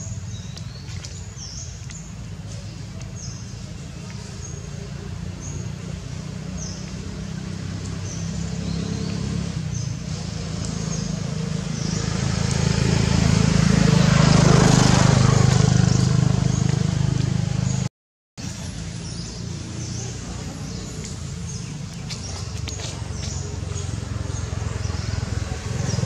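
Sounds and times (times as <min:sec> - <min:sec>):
vehicle engine passing by: 0:00.0 - 0:17.9, 0:18.5 - 0:26.0.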